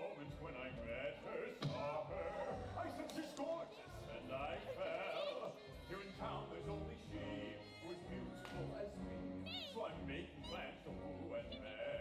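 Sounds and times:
voices singing: 0:00.0 - 0:12.0.

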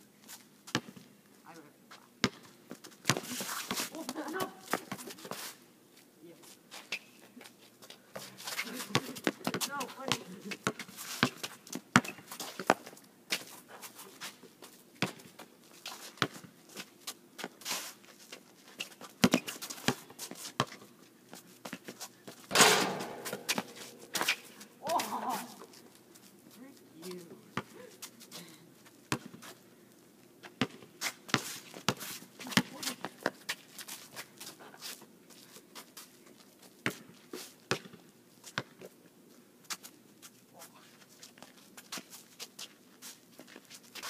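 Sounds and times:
basketball bouncing on asphalt: 0:00.7 - 0:01.0, 0:02.2 - 0:03.3, 0:09.0 - 0:12.9, 0:15.0 - 0:15.3, 0:16.2 - 0:16.5, 0:19.2 - 0:20.8, 0:21.6 - 0:24.4, 0:29.1 - 0:29.4, 0:30.5 - 0:33.4, 0:36.8 - 0:37.1, 0:37.7 - 0:38.0, 0:38.6 - 0:38.8
footsteps on court: 0:21.6 - 0:26.0.

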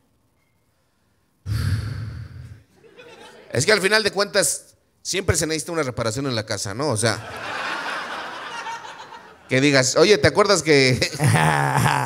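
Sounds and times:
man sighing: 0:01.5 - 0:02.7.

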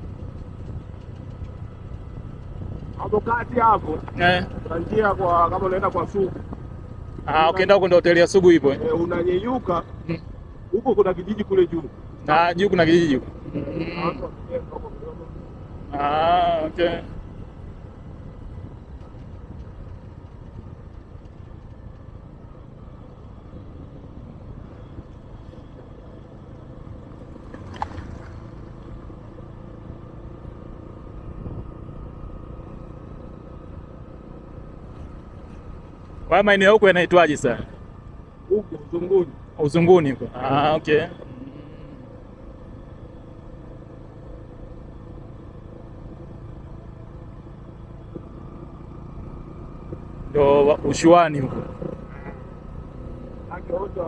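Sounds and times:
vehicle engine and road rumble: 0:00.0 - 0:54.0.

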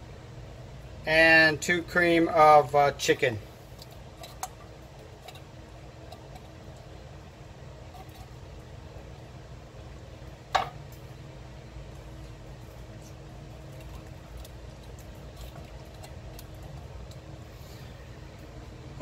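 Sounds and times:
low hum: 0:03.2 - 0:19.0.

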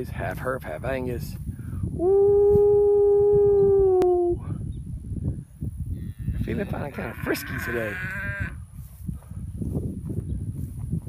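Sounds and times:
farm animal bleating: 0:06.0 - 0:08.6.

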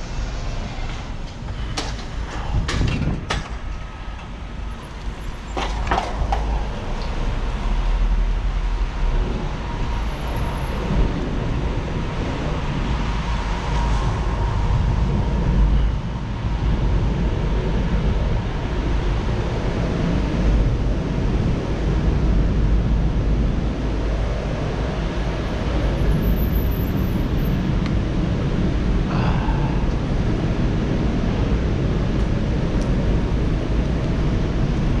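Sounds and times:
wind buffeting microphone: 0:00.0 - 0:35.0.

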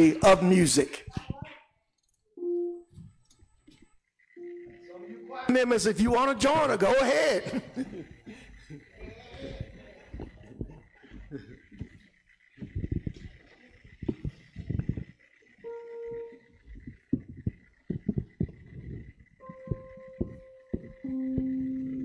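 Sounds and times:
sustained instrument note: 0:04.4 - 0:05.5, 0:15.6 - 0:16.9, 0:19.4 - 0:22.0
low knocks and bumps: 0:12.6 - 0:13.3, 0:16.8 - 0:21.6.

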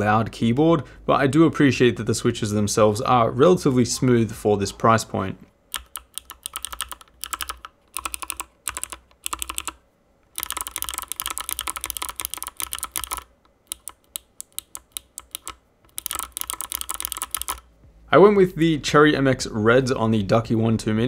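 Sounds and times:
clicky mechanical keyboard typing: 0:05.7 - 0:17.7.

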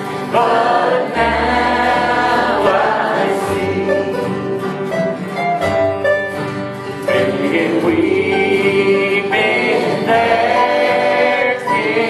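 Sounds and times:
voices singing together: 0:00.0 - 0:05.5, 0:06.9 - 0:12.0
acoustic guitars: 0:00.0 - 0:12.0
banjo: 0:00.0 - 0:12.0
upright bass: 0:00.0 - 0:12.0.

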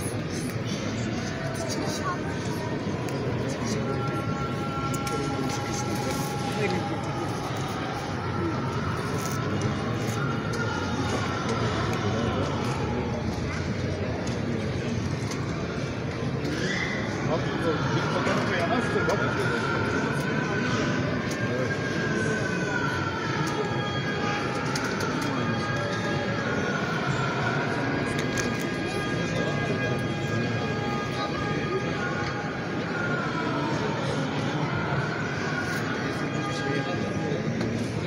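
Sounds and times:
crowd noise indoors: 0:00.0 - 0:38.0.

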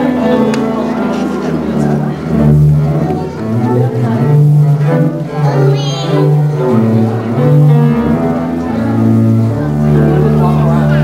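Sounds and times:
bowed double bass melody: 0:00.0 - 0:11.0
piano accompaniment: 0:00.0 - 0:11.0.

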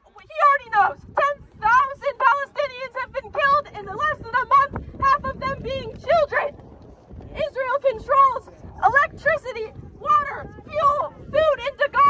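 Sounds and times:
woman speaking through megaphone: 0:00.0 - 0:06.5, 0:07.4 - 0:12.0.

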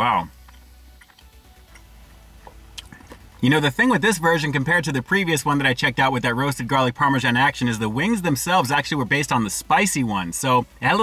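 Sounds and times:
faint chewing: 0:00.3 - 0:03.5.

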